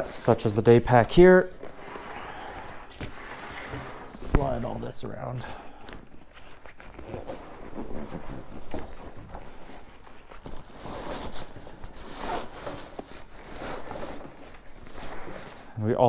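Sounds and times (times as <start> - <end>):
nylon backpack rustling: 1.4 - 4.9, 6.0 - 15.8.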